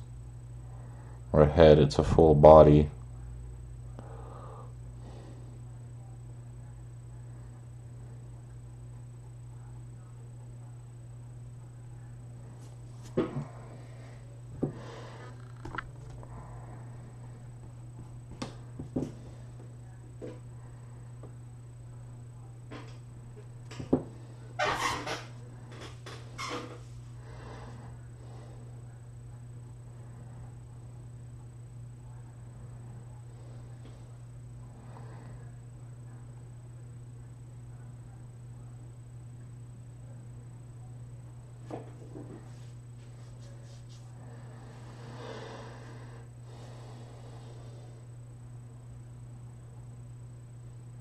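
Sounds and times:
high constant whine: 0.0 - 51.0
low electrical hum: 0.0 - 51.0.

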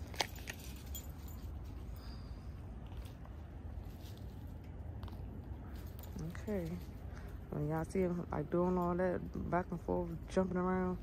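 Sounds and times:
low rumble with faint hiss: 0.0 - 11.0.

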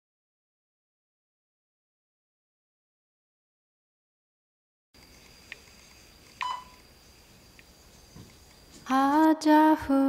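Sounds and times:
faint high whine: 5.0 - 10.0
short beep: 6.4 - 6.8.

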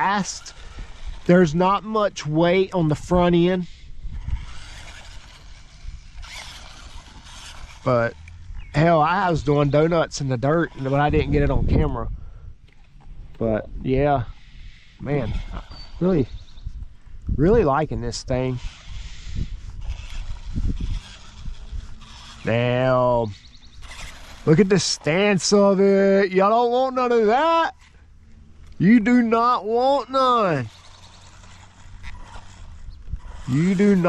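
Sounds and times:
wind buffeting microphone: 0.0 - 25.6, 30.6 - 34.0
toy truck driving on asphalt: 0.0 - 34.0.

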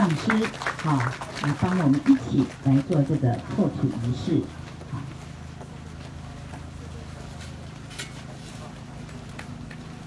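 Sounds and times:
steady low hum: 0.6 - 10.0.

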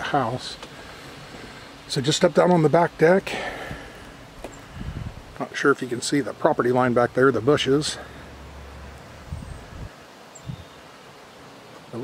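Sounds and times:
wind in leaves: 0.0 - 12.0.

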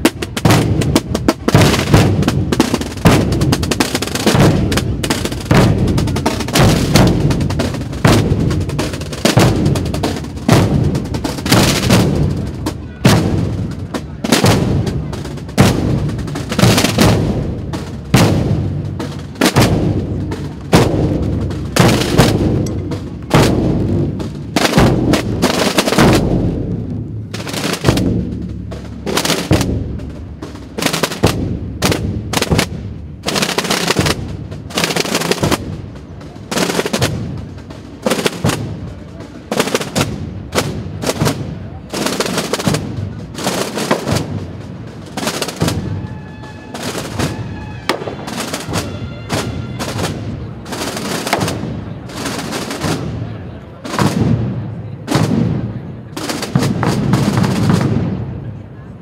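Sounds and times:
drums beating sharp strokes: 0.0 - 53.2, 56.2 - 58.2.

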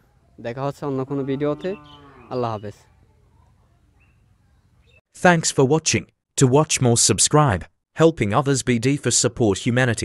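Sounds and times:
cow mooing: 0.9 - 2.6.

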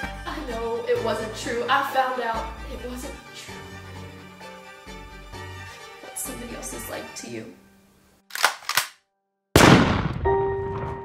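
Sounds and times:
deep cinematic boom hit: 9.6 - 11.0.

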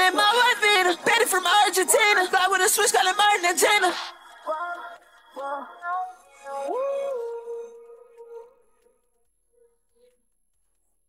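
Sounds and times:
auto-tuned rap vocals: 0.0 - 10.2.

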